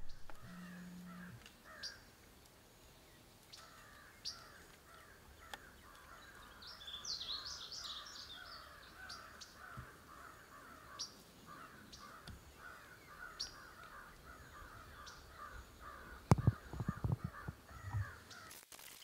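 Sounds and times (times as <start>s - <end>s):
high birdsong: 0.0s - 18.5s
faint birds calling: 0.0s - 18.6s.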